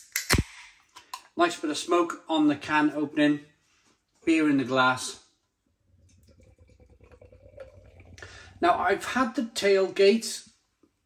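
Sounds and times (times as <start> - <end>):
liquid gurgling and fizzing: 5.7 - 10.0.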